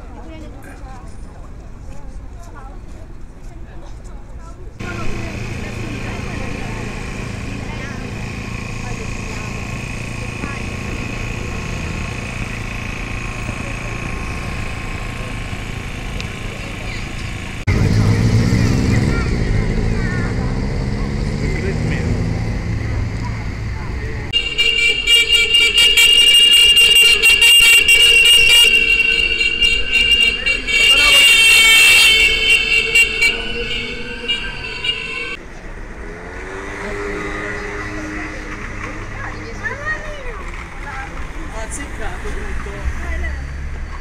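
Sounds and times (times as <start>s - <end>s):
street traffic rumble: 0.0s - 44.0s
scooter horns tooting: 4.8s - 35.4s.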